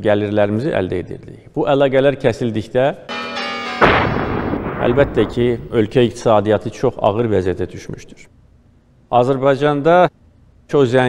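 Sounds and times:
steady ringing tone: 0:03.1 - 0:06.6
loud blast-like hit: 0:03.1 - 0:06.8.

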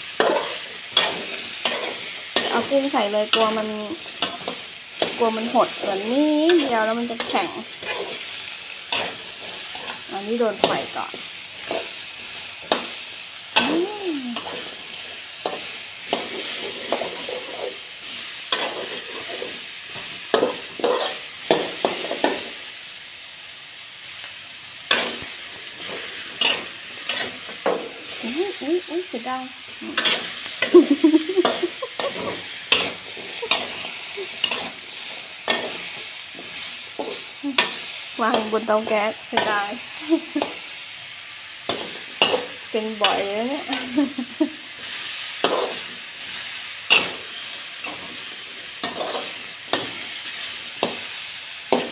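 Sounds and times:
metal spatula scraping wok: 0:00.0 - 0:13.0, 0:14.3 - 0:22.6, 0:24.9 - 0:39.8, 0:41.7 - 0:44.0, 0:44.8 - 0:51.9
food sizzling: 0:00.0 - 0:51.9.

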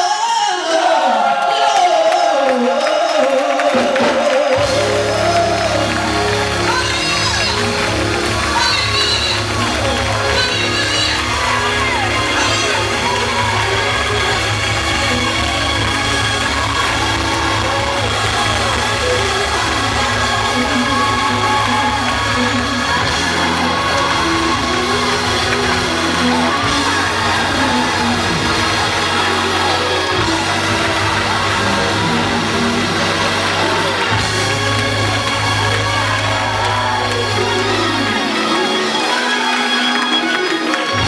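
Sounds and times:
gospel choir and soloist singing: 0:00.0 - 0:07.8
congregation shouting: 0:00.0 - 0:41.0
instrumental accompaniment: 0:04.0 - 0:41.0.

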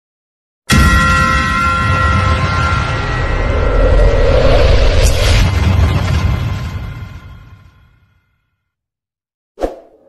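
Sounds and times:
deep loud rumble: 0:02.8 - 0:07.2.

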